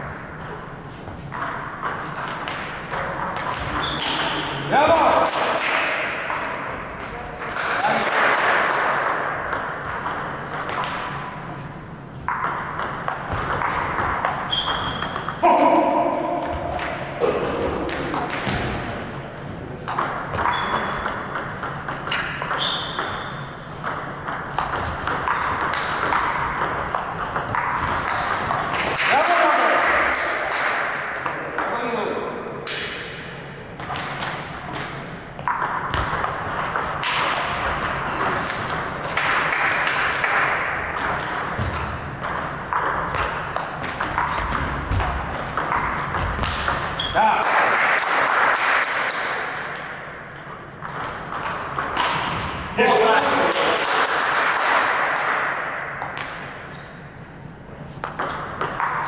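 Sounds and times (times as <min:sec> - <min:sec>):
table tennis ball clicking: 0:12.3 - 0:15.4, 0:19.9 - 0:29.0, 0:33.8 - 0:47.0.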